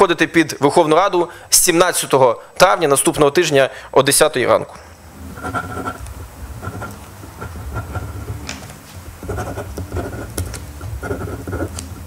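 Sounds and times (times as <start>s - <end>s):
pen writing on paper: 5.4s - 6.0s, 6.6s - 8.4s, 9.2s - 12.0s.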